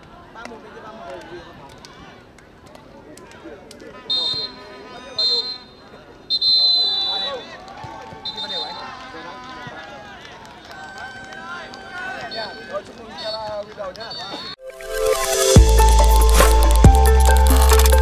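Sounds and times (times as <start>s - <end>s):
shrill whistle blasts: 4.1s - 7.5s, 8.2s - 8.8s.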